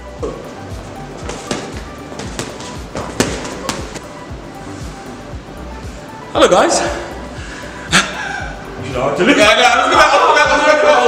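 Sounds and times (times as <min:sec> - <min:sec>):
boxing gloves punching mitts: 0:01.2 - 0:04.1.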